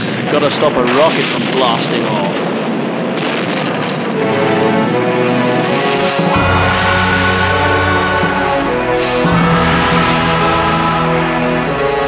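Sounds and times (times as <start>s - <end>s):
rocket launch rumbling blast: 0.0s - 12.0s
dramatic soundtrack music: 4.0s - 12.0s.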